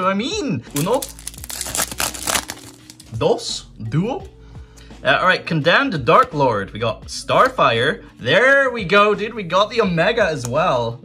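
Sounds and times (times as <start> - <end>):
foil wrapper tearing: 0.8 - 3.1.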